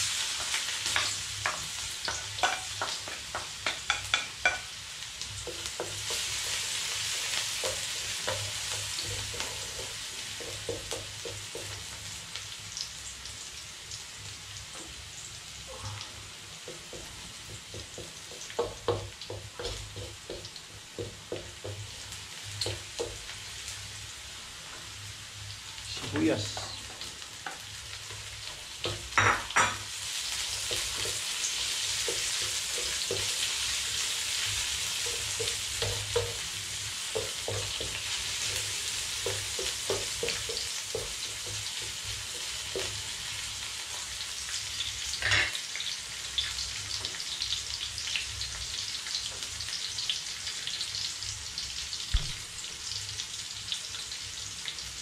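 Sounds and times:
garlic sizzling in oil: 0.0 - 55.0.

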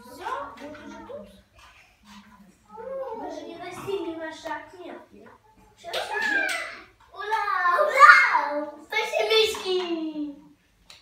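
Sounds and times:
children's voices: 0.0 - 10.6.

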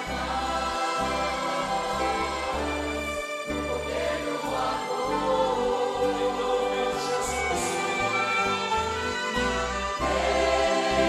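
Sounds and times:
church choir singing a hymn: 0.0 - 11.0
violins: 0.0 - 11.0.

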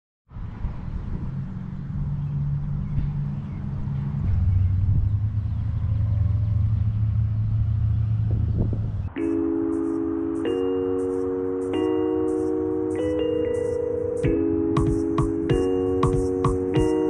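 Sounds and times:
vehicle engine running: 0.3 - 9.2
chiming music: 9.1 - 17.0.

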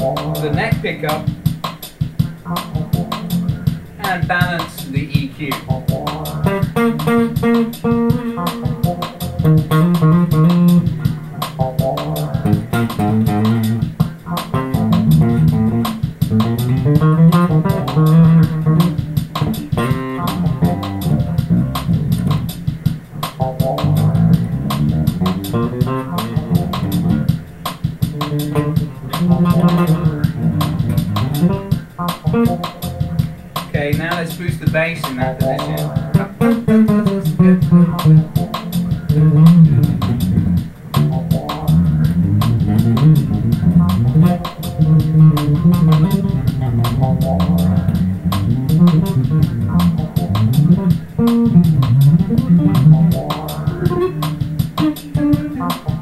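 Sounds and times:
electric bass plucked notes: 0.0 - 56.0.

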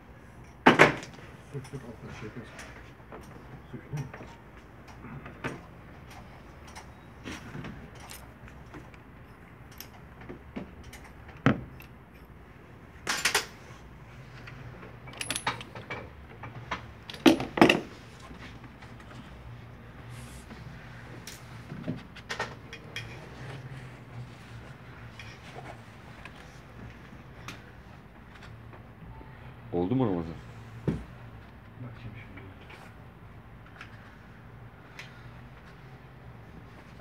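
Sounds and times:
metallic clinks and rattles of tools: 2.5 - 12.4, 13.0 - 13.6, 14.4 - 19.2, 22.2 - 23.6, 25.0 - 26.4.

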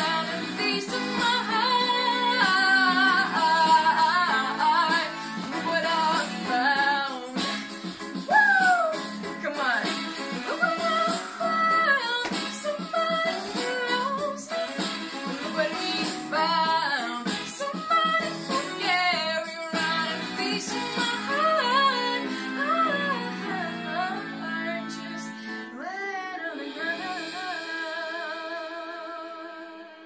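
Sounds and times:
instrumental accompaniment: 0.0 - 28.9
girl singing pop song: 0.0 - 30.0.

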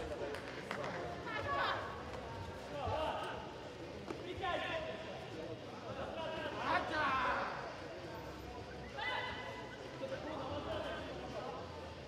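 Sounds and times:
low hum of sports hall: 0.0 - 12.0.

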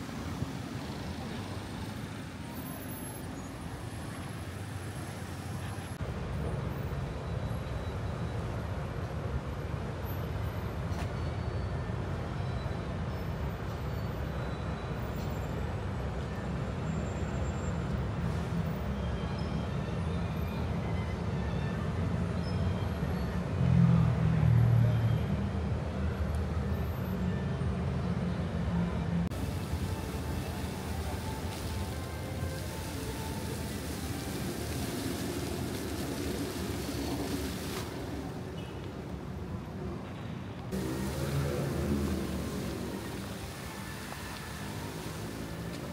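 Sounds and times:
fountain jets splashing into pond: 0.0 - 6.4, 29.3 - 39.7, 40.6 - 45.9
city traffic rumble: 0.0 - 45.9.

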